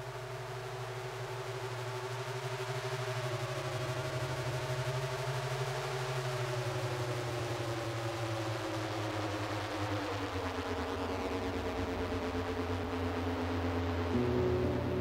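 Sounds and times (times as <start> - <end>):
droning hiss: 12.1 - 15.0
tones gliding downward in pitch: 14.2 - 15.0.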